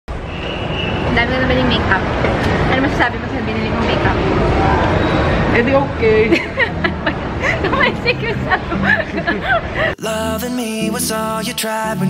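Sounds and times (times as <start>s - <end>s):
people's voices: 1.1s - 12.0s.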